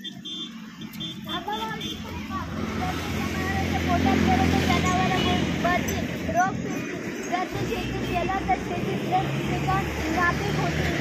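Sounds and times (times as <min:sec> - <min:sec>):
voices talking: 0:00.0 - 0:11.0
motor vehicle passing rumble: 0:00.8 - 0:11.0.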